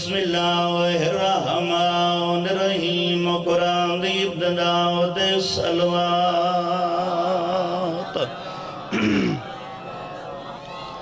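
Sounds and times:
man chanting through amplification: 0.0s - 8.3s.

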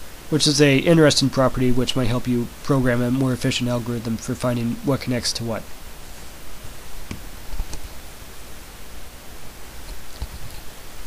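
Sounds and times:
background hiss and hum: 0.0s - 11.0s.

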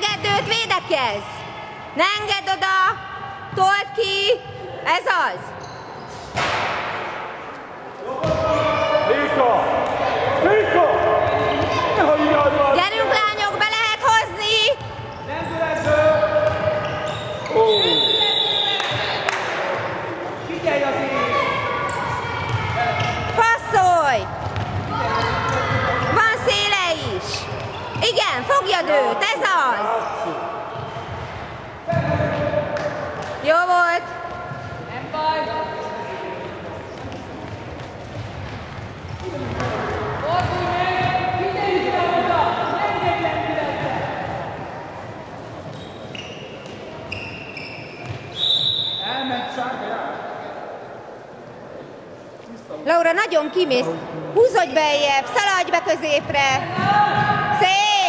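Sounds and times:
voices calling out echoing: 7.0s - 58.0s.

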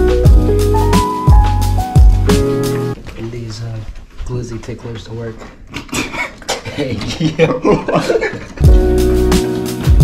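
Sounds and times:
background music: 0.0s - 3.0s, 8.6s - 10.0s.

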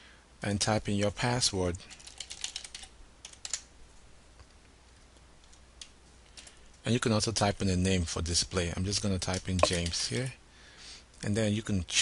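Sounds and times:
keyboard typing: 2.0s - 3.6s, 9.3s - 10.0s.

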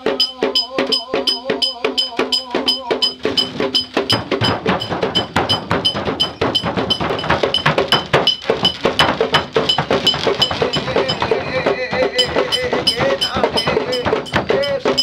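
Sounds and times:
drumming: 0.0s - 15.0s
ringing metallic strikes: 0.0s - 15.0s
wooden knocks: 3.0s - 15.0s.

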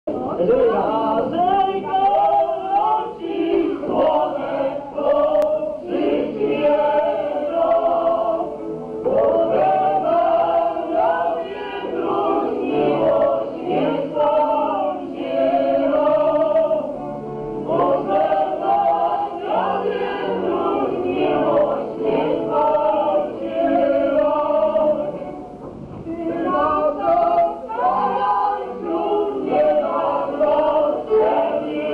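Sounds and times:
folk choir singing: 0.3s - 31.9s.

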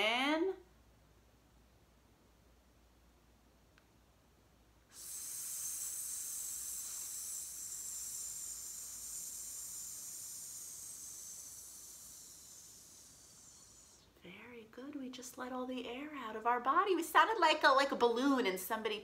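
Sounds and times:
woman exhaling with steady hiss: 4.8s - 14.3s.

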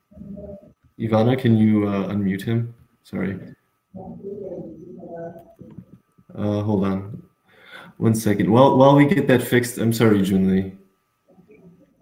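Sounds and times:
pigeon cooing: 0.0s - 0.8s, 4.0s - 6.0s.

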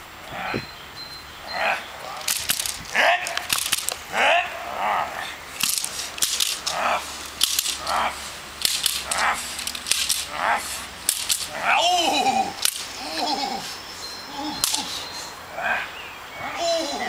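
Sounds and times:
stick cracking: 2.2s - 4.1s, 5.6s - 11.6s, 12.6s - 13.0s.

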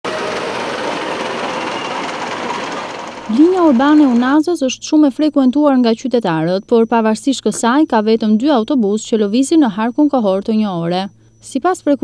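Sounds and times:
bus engine idling: 0.0s - 4.4s.

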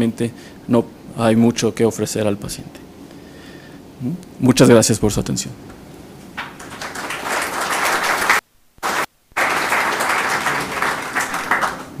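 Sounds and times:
audience applauding: 6.4s - 12.0s.

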